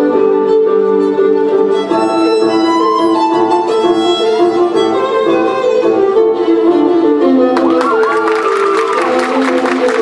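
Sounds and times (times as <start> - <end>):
violin melody: 0.0 - 10.0.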